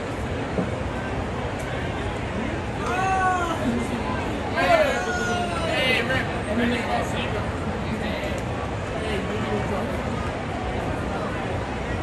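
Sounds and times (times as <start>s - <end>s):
stadium background noise: 0.0s - 12.0s.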